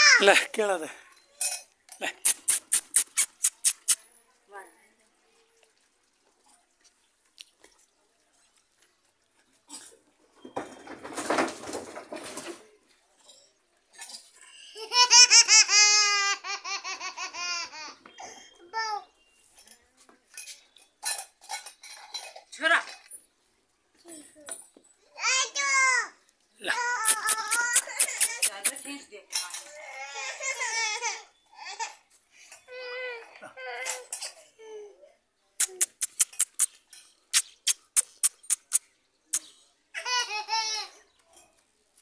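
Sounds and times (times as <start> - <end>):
high-pitched laughter: 2.0 - 4.0, 14.7 - 18.0, 27.0 - 28.7.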